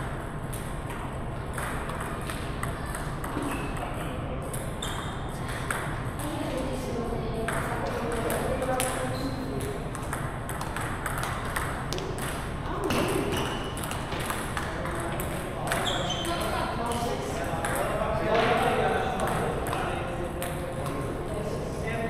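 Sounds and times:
table tennis balls clicking: 0.5 - 6.4, 7.4 - 21.1
people talking: 6.2 - 9.9, 12.6 - 13.6, 14.5 - 22.0.

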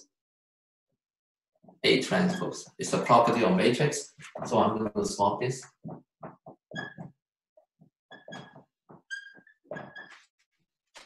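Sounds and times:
marker squeaking on whiteboard: 1.8 - 3.2, 4.1 - 4.8, 5.6 - 11.0.

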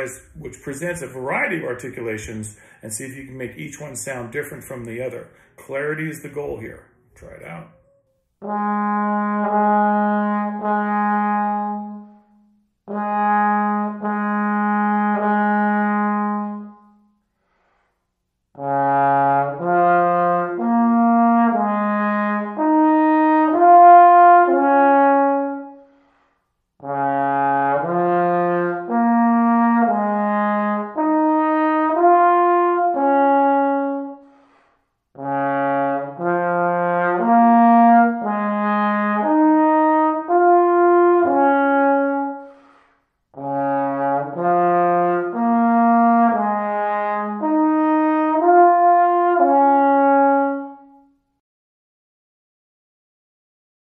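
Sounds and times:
player breathing: 2.5 - 2.8, 5.3 - 5.6, 34.2 - 34.9, 42.4 - 43.2
solo trombone playing notes: 8.4 - 17.1, 18.6 - 25.9, 26.8 - 34.5, 35.2 - 51.1.

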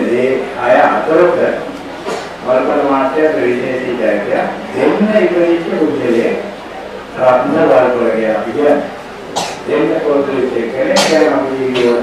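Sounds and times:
man speaking into a microphone: 0.0 - 12.0.

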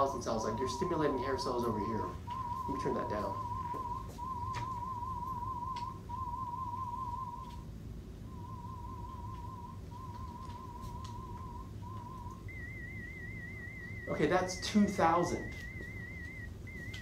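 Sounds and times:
higher warbling tone: 0.0 - 17.0
warbling test tone pulses: 0.0 - 17.0.

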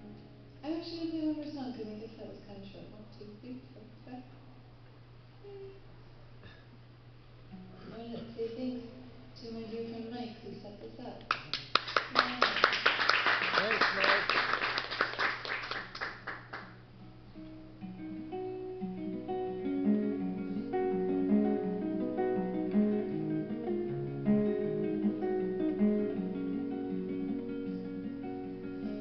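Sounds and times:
faint steady hum: 0.0 - 29.0
applause: 11.3 - 16.8
acoustic guitar plucked notes: 16.8 - 29.0.

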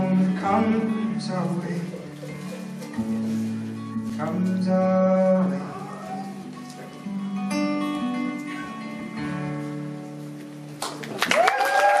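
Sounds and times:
acoustic guitar chords: 0.0 - 11.0
audience applause and cheer: 10.8 - 12.0.

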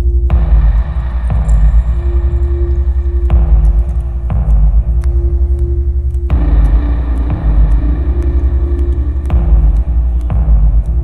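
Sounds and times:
deep pulsing rumble: 0.0 - 11.0
held drone tone: 0.0 - 11.0.

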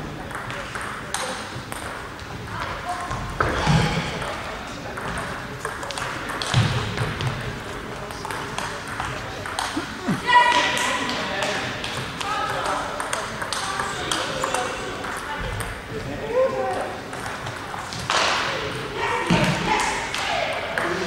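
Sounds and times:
voices in a hall: 0.0 - 21.0
table tennis ball clicking: 12.6 - 15.7.

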